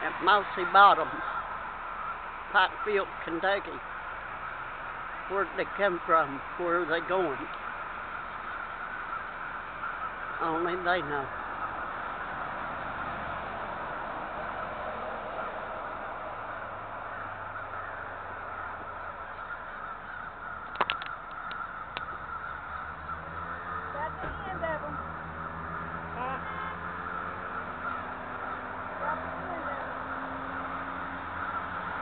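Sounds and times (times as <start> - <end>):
huge flock of birds calling: 0.0 - 32.0
sharp clicks: 20.7 - 22.1.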